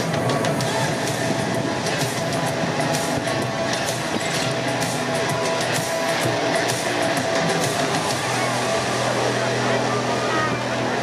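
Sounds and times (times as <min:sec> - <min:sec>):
music over public address: 0:00.0 - 0:11.0
stadium crowd hubbub: 0:00.0 - 0:11.0.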